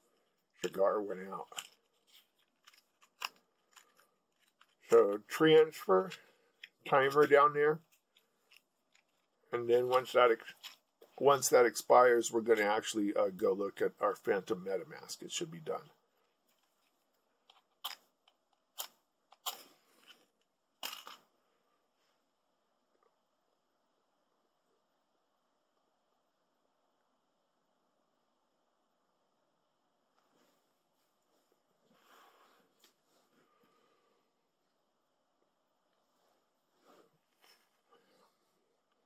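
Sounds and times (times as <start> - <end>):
man speaking: 0.6 - 1.6, 4.8 - 6.2, 6.8 - 7.8, 9.5 - 16.0.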